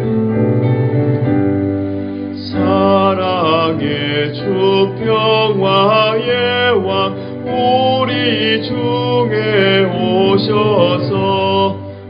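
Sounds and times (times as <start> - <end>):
sustained instrumental accompaniment: 0.0 - 12.0
man singing a hymn: 2.4 - 12.0.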